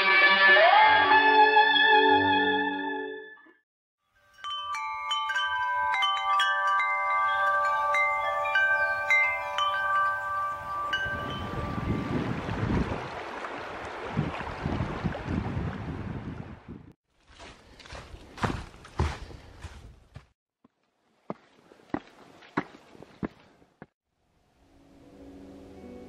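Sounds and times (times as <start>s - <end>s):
hand-played chimes ringing: 4.0s - 12.1s
wind noise on microphone: 9.0s - 17.0s
moving water: 10.8s - 16.3s.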